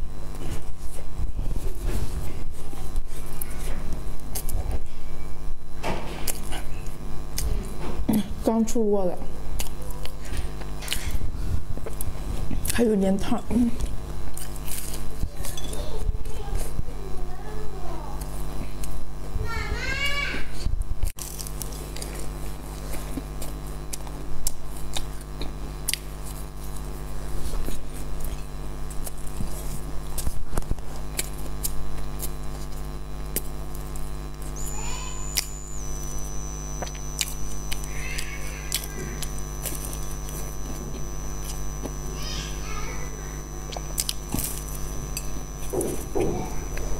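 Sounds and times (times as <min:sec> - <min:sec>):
crunching and chewing pastry: 0:00.0 - 0:08.4, 0:09.4 - 0:46.9
electrical hum: 0:00.0 - 0:46.9.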